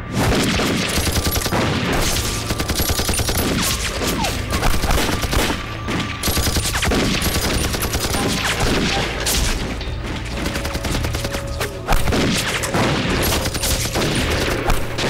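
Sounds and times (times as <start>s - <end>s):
rapid rifle gunfire: 0.1s - 9.7s, 10.3s - 15.0s.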